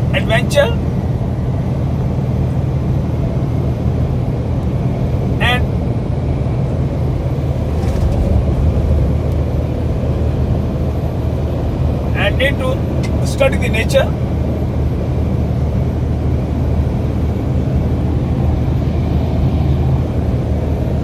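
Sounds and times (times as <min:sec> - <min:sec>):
vehicle engine and tyre rumble: 0:00.0 - 0:21.0.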